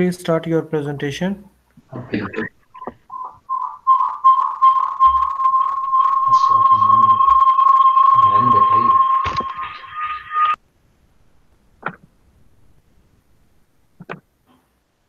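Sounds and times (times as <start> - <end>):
muffled voices: 1.8 - 2.9, 6.0 - 7.5, 8.1 - 9.8
audio feedback howl: 2.0 - 10.6.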